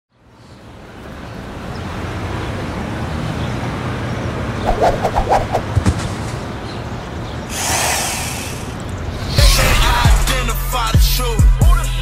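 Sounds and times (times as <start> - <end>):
whoosh: 4.6 - 6.0.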